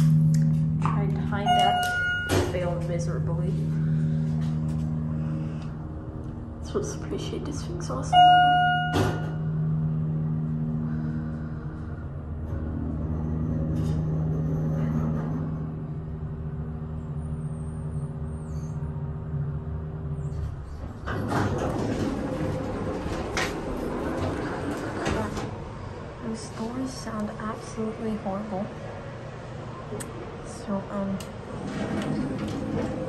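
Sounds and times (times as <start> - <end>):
elevator doors sliding open: 0.0 - 5.1, 5.9 - 16.9, 20.1 - 27.9, 28.8 - 33.0
elevator pump motor humming: 0.0 - 33.0.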